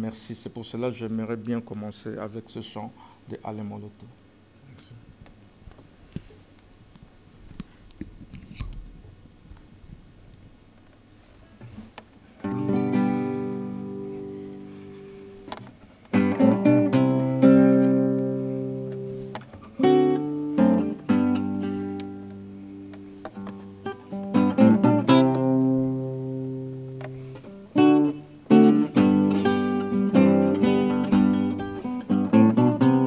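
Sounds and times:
classical guitar strumming: 0:12.4 - 0:33.0.

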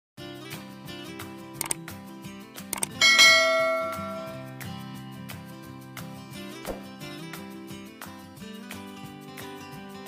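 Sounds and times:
quick clicks: 0:02.7 - 0:03.0
intro music: 0:02.8 - 0:05.6
loud bell chime: 0:03.0 - 0:04.6.

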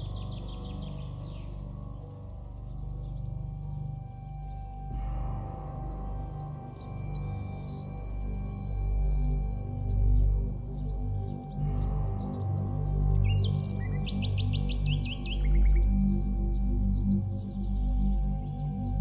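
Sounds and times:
ambient drone music: 0:00.0 - 0:19.0
bird chirps and trills: 0:00.0 - 0:19.0.

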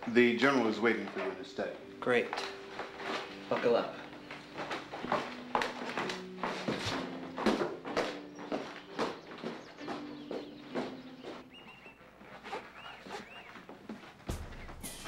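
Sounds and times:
footsteps on wooden stairs: 0:00.0 - 0:15.0.

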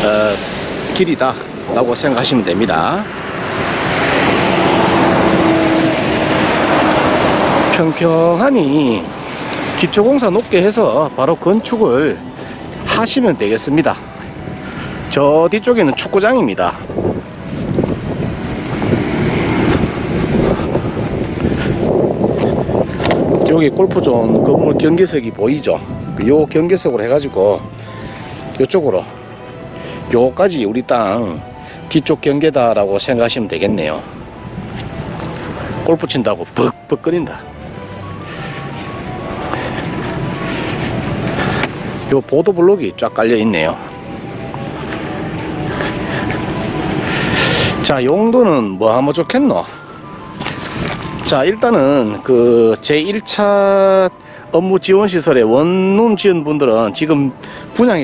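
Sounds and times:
wind buffeting microphone: 0:00.0 - 0:11.7, 0:16.0 - 0:29.2, 0:34.0 - 0:35.9
vehicle passing on road: 0:00.0 - 0:58.0.

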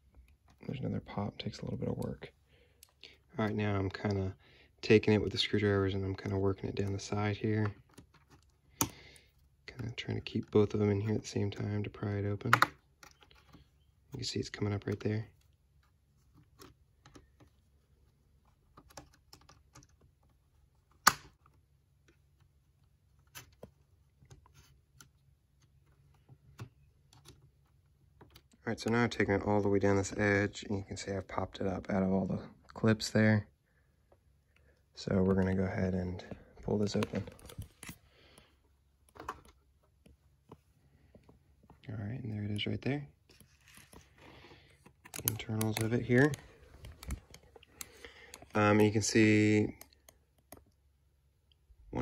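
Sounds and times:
loud plastic clip snap: 0:21.0 - 0:21.3.

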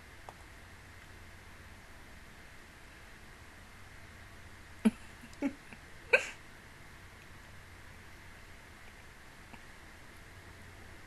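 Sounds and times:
woman giggling: 0:04.8 - 0:06.4.

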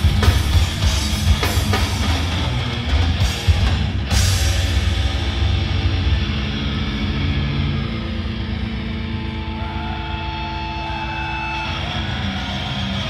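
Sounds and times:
feedback whine: 0:00.0 - 0:13.0
metal band droning chord: 0:00.0 - 0:13.0.

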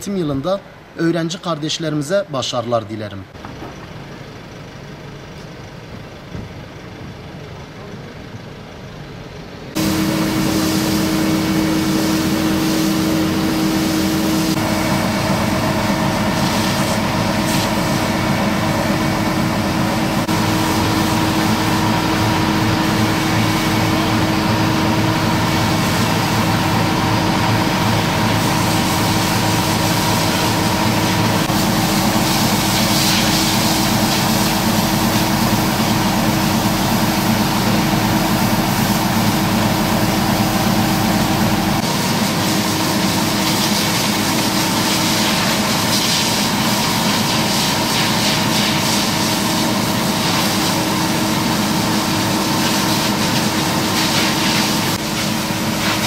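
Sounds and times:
truck engine running: 0:03.3 - 0:56.0
high-pressure hose spraying pavement: 0:09.8 - 0:56.0.

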